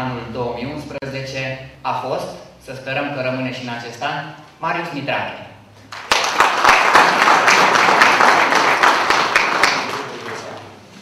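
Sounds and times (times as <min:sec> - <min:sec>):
audience applauding: 0:05.9 - 0:10.8.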